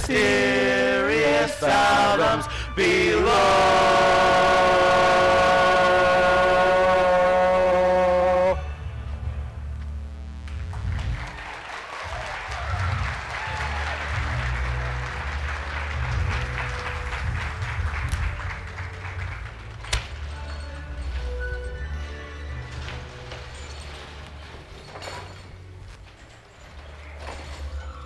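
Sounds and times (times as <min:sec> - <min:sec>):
chorus singing with accompaniment: 0:00.0 - 0:08.8
low rumble: 0:02.4 - 0:11.5, 0:12.1 - 0:20.4
audience applause: 0:10.5 - 0:20.0.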